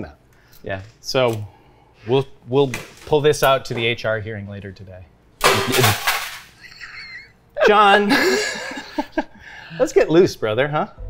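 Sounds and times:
man laughing loudly: 6.6 - 9.4.

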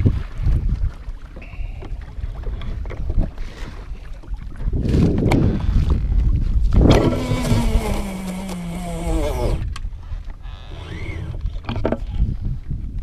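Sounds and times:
wind rumble on microphone: 0.0 - 13.0
fishing reel spool whirring: 7.0 - 9.7, 10.4 - 11.7.

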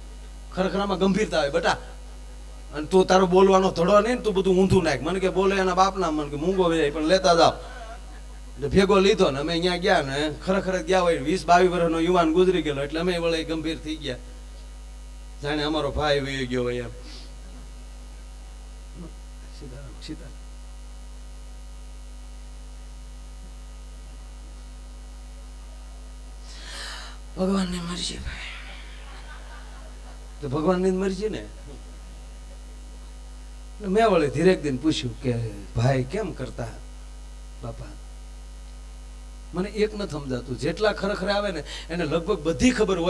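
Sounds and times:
electrical mains hum: 0.0 - 43.0.

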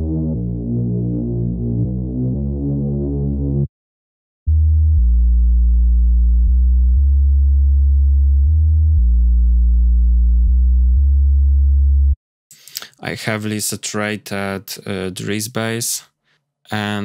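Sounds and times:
deep synth bass line: 0.0 - 3.7, 4.5 - 12.2.

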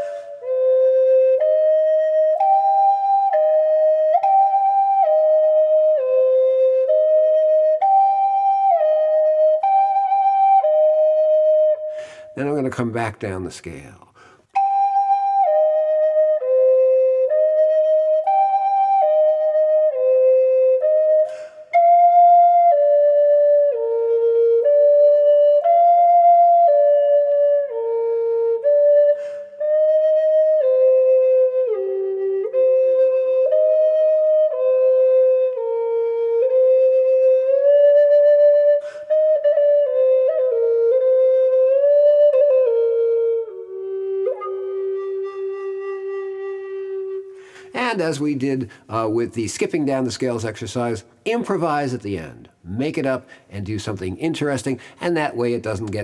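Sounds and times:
flute playing slow notes: 0.0 - 12.4, 14.6 - 47.7.

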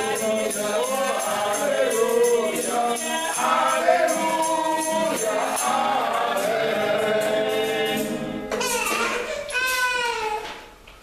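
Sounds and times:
group singing a hymn: 0.0 - 8.8
man's voice leading singing: 0.0 - 9.1
jingling hand percussion: 0.0 - 9.9
acoustic guitar: 0.0 - 11.0.

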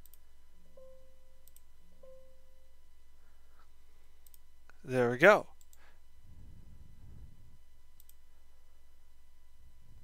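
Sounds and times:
computer mouse clicks: 0.0 - 0.2, 1.4 - 1.7, 4.2 - 4.8, 8.0 - 8.2
soft electronic tones: 0.0 - 4.4.

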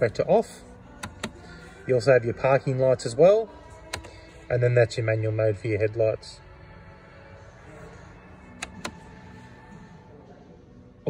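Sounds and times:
rotary switch clicking: 1.0 - 1.4, 8.6 - 9.0.

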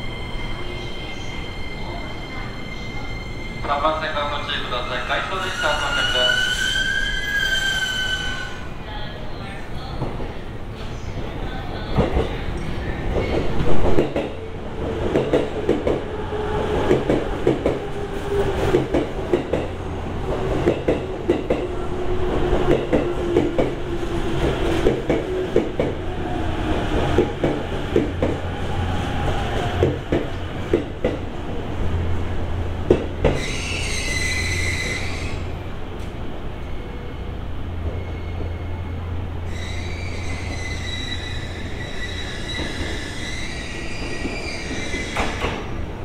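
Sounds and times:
high brake squeal: 5.3 - 8.6, 33.3 - 35.5, 37.9 - 45.6.

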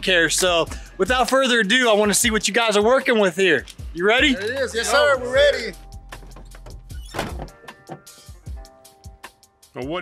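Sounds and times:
quiet music: 0.0 - 10.0.

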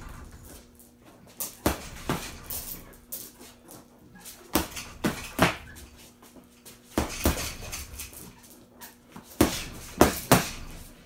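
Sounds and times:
punches on heavy bag: 7.0 - 7.8, 9.4 - 10.8.

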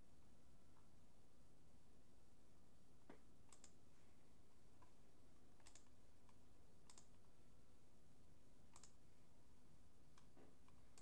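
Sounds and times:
computer input clicks: 3.5 - 3.8, 5.6 - 5.9, 6.9 - 7.2, 8.7 - 9.0.

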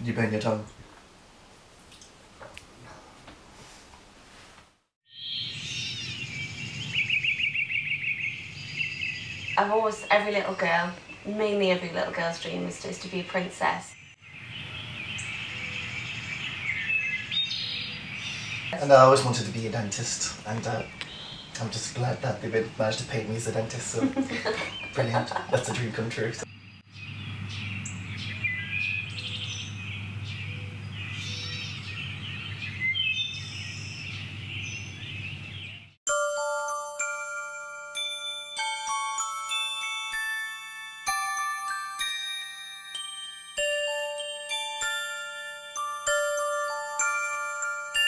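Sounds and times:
birds chirping and singing: 5.1 - 23.8, 24.4 - 36.6, 41.7 - 48.0.

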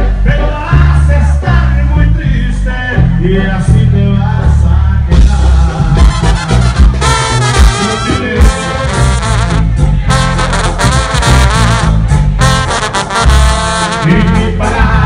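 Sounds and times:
heavy bass: 0.0 - 15.0
steady drum beat: 5.1 - 15.0
trumpet and trombone melody: 5.2 - 15.0.

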